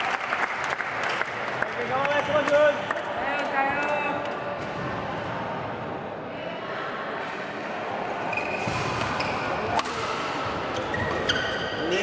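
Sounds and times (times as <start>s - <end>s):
shoe squeak on court floor: 8.2s - 12.0s.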